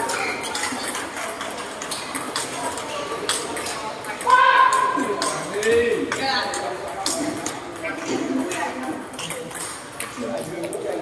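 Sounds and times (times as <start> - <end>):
people's voices: 0.0 - 11.0
table tennis balls clicking: 0.0 - 11.0.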